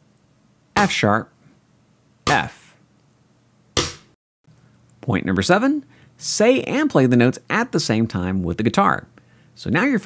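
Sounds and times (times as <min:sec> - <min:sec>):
man speaking: 0:00.8 - 0:01.3, 0:02.3 - 0:02.8.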